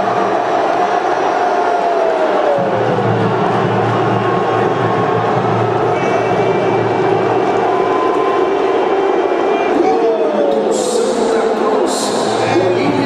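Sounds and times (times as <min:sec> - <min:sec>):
stadium crowd noise: 0:00.0 - 0:13.0
commentator talking: 0:09.6 - 0:13.0.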